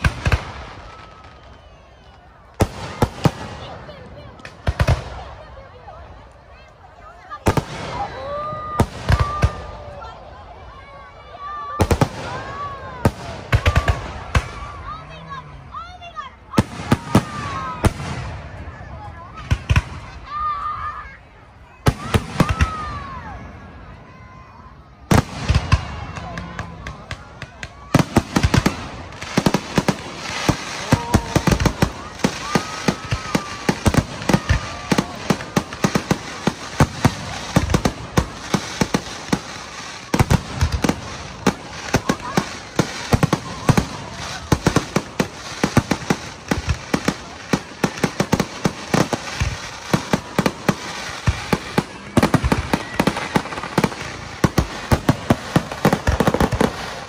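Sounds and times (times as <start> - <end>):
fireworks bursting: 0.0 - 6.6, 7.2 - 21.1, 21.7 - 57.0.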